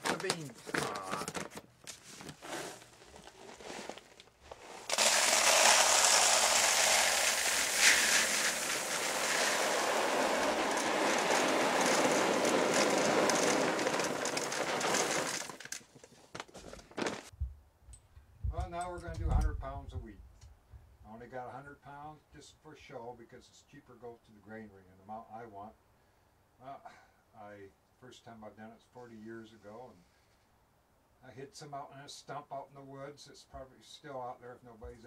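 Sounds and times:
sack handling: 0.0 - 17.3
dried beans pouring into bucket: 2.4 - 15.8, 16.9 - 17.3.

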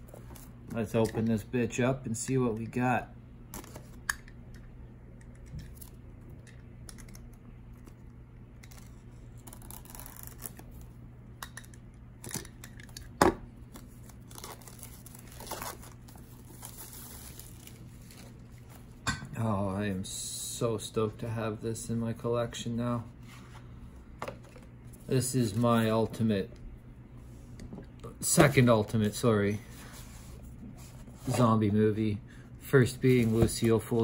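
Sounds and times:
steady low hum: 0.0 - 34.0
plastic shrink-wrap tearing: 8.6 - 10.8, 13.8 - 18.4.

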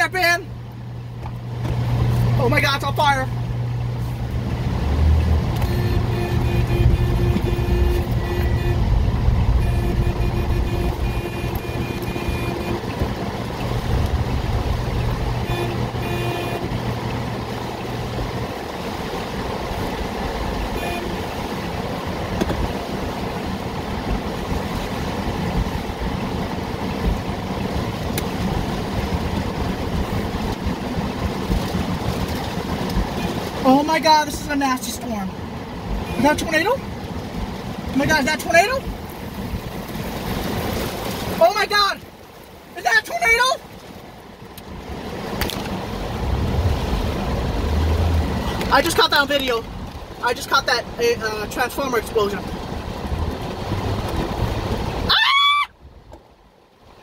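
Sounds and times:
heavy rain on car: 0.0 - 57.0
windshield wipers running: 0.7 - 42.5, 51.9 - 55.1.

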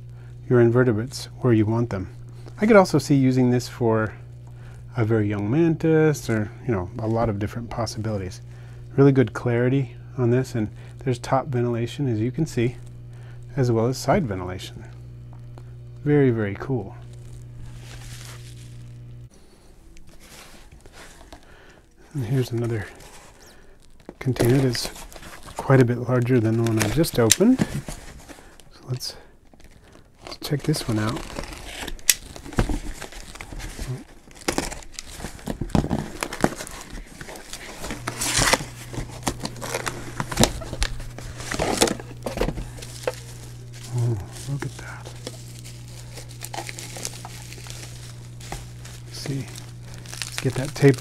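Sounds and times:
steady low hum: 0.0 - 51.0
bubble wrap crinkling: 1.8 - 3.3, 16.6 - 51.0
cardboard packaging rustling: 16.7 - 51.0.

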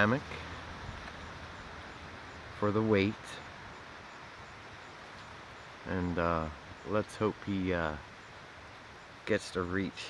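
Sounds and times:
corn leaves rustling in wind: 0.0 - 10.0.

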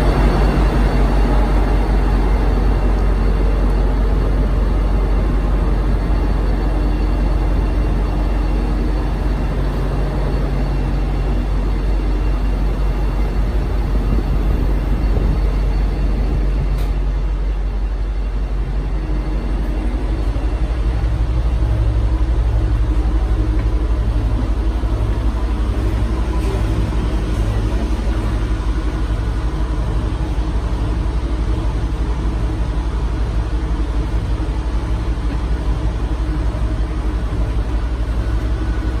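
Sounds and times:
diesel train idling: 0.0 - 39.0
pulsing low hum: 0.0 - 39.0.

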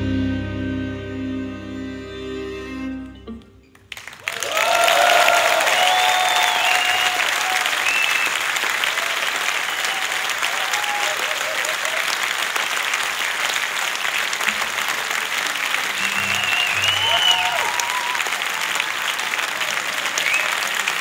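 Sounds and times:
audience applauding and cheering: 3.7 - 21.0
whistles and shouts: 5.5 - 8.5, 16.0 - 18.3, 20.2 - 20.7.

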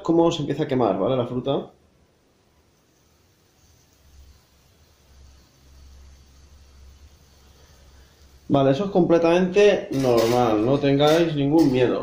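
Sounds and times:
fruit bowl sizzling under coals: 0.0 - 12.0.

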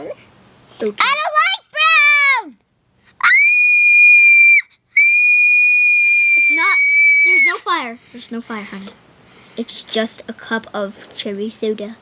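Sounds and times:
child screeching: 3.2 - 7.7.

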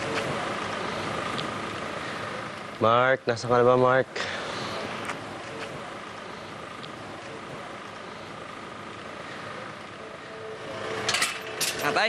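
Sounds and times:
distant vehicle hiss: 0.0 - 12.0
faint high hum: 0.0 - 12.0.

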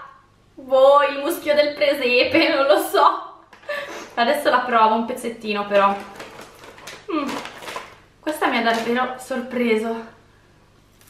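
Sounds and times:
crisp snack sheet crackling: 5.6 - 9.2
plastic bag crinkling: 5.6 - 9.2.

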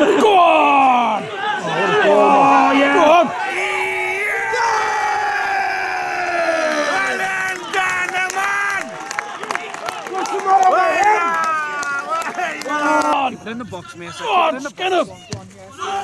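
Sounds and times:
football spectators cheering: 0.0 - 16.0.

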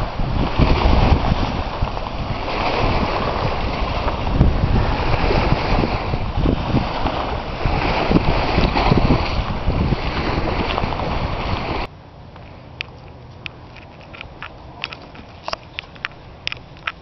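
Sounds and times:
waves washing on rocky shore: 0.0 - 11.9
wind buffeting microphone: 0.0 - 17.0.

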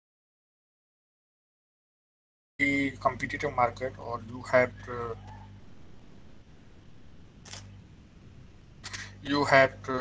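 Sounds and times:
man speaking: 2.6 - 5.3, 8.9 - 10.0
electrical hum and hiss: 2.6 - 10.0.

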